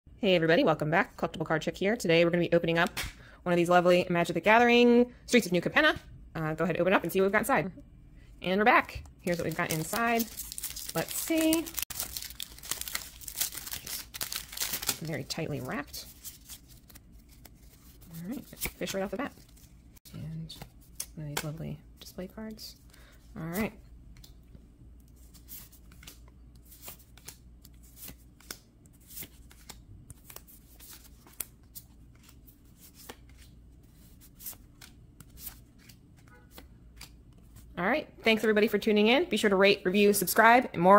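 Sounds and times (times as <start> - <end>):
low room hum: 0.1 - 40.9
foil wrapper crinkling and tearing: 9.3 - 15.3
cards snapping and sliding: 25.6 - 31.5.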